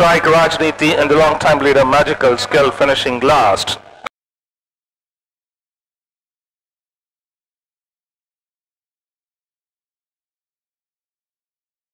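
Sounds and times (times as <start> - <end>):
race commentary: 0.0 - 3.9.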